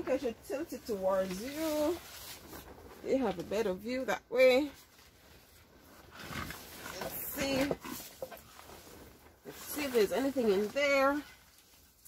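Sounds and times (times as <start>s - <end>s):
dry foliage and soil rustling: 0.0s - 12.0s.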